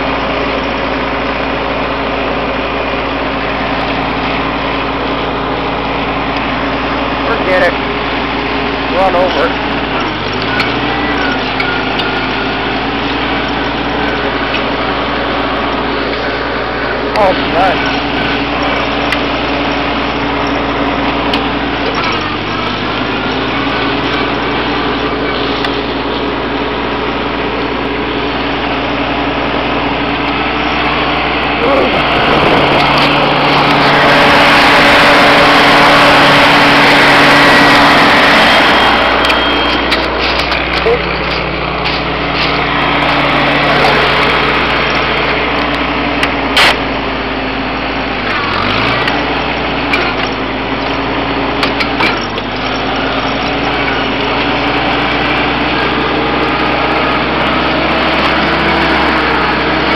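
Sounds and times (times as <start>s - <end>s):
tractor engine running: 0.0s - 59.9s.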